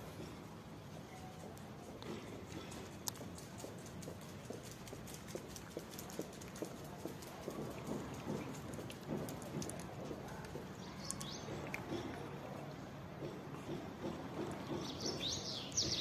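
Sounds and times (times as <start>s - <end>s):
cat chewing dry kibble: 2.0s - 12.2s.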